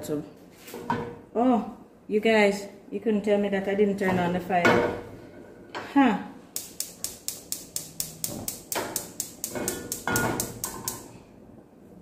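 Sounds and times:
spark igniter clicking rapidly: 6.6s - 11.1s.

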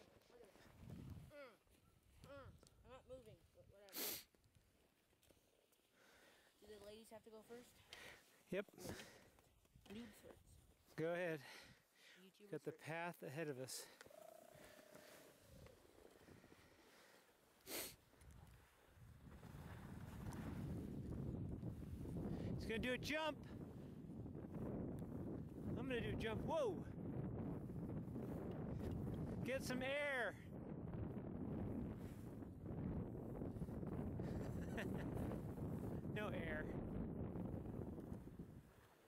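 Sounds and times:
wind buffeting microphone: 0.7s - 1.3s, 19.0s - 38.8s
skis sliding over snow: 14.6s - 16.2s, 18.5s - 21.0s.

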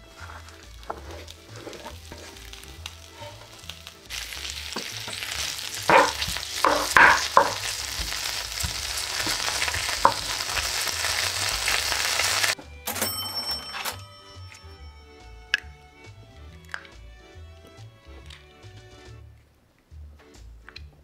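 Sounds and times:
meat sizzling in a frying pan: 0.0s - 12.6s
wooden spatula scraping a pan: 0.0s - 12.6s.

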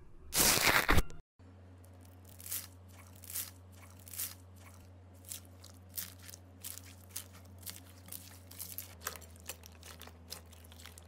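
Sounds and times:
foam beads crunching: 1.9s - 11.0s.

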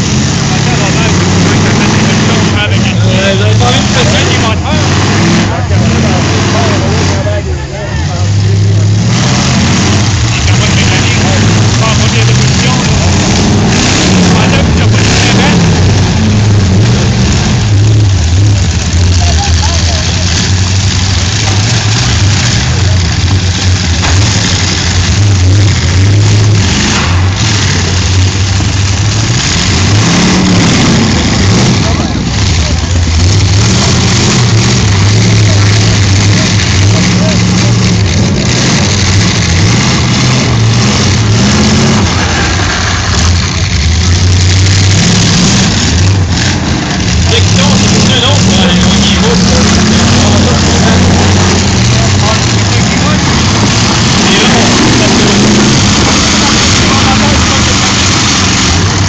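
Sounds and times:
voices: 0.0s - 24.9s, 30.5s - 44.0s, 46.3s - 59.0s
car engines revving hard: 0.0s - 59.0s
cars ramming impacts: 9.3s - 45.0s.

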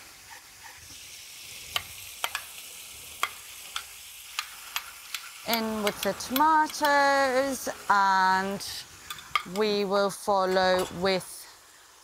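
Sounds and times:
beef sizzling in oil: 0.0s - 12.0s.

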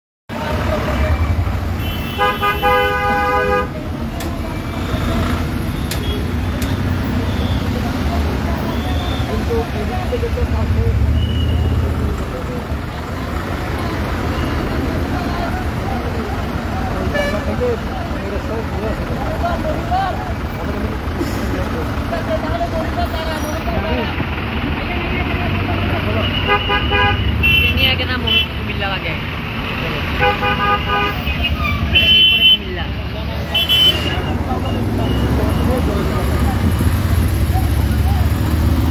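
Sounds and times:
heavy road traffic: 0.3s - 38.9s
vehicle horns honking: 1.3s - 4.0s, 4.6s - 7.8s, 11.0s - 11.9s, 17.0s - 17.7s, 26.0s - 28.8s, 30.1s - 32.8s, 33.4s - 36.1s.

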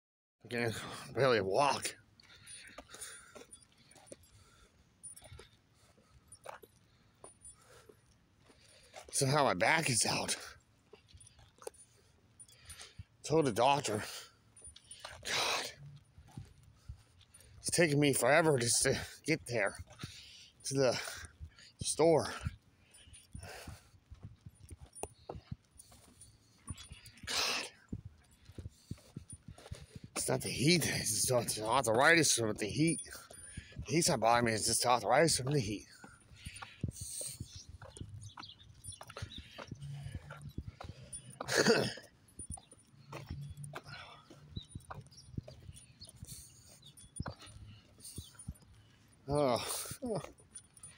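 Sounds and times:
footsteps on asphalt: 0.6s - 50.9s.

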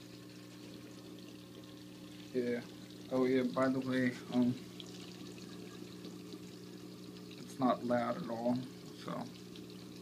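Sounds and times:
pump humming: 0.0s - 10.0s
water trickling: 0.0s - 10.0s.

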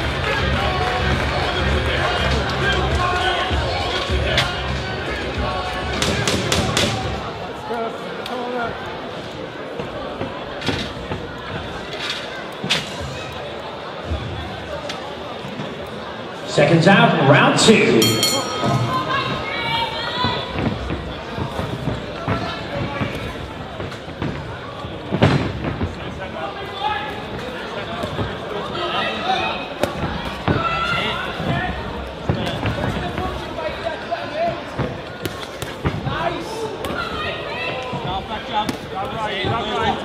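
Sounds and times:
crowd voices calling out: 0.0s - 23.6s, 26.3s - 40.0s.

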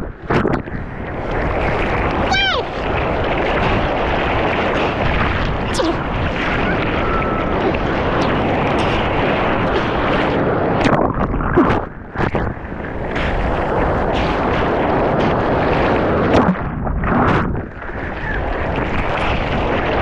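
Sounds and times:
whitewater rushing rumble: 0.0s - 20.0s
paddling splashes: 0.2s - 20.0s.

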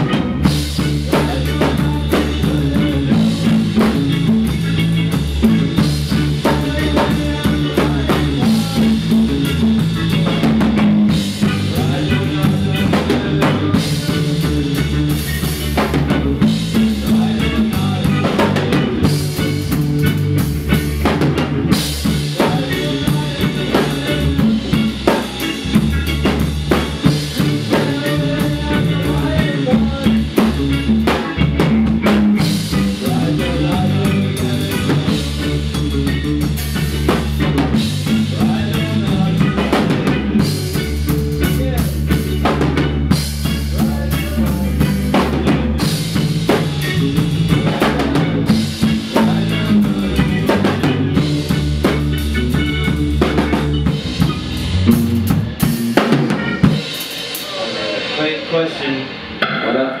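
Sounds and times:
bass guitar: 0.0s - 60.0s
drum kit: 0.0s - 60.0s
ska band playing: 0.0s - 60.0s.

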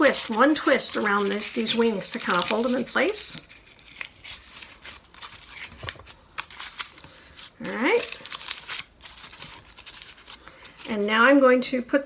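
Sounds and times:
paper liner crinkling: 0.0s - 11.4s.

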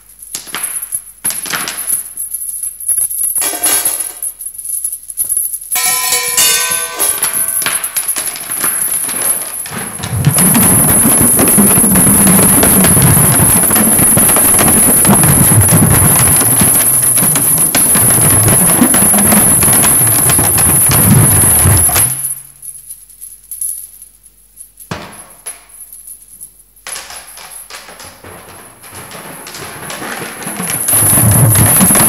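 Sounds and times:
chain rattling on frame drum: 0.1s - 23.8s, 24.7s - 32.0s
ringing metal percussion tones: 5.7s - 22.9s, 28.1s - 32.0s.

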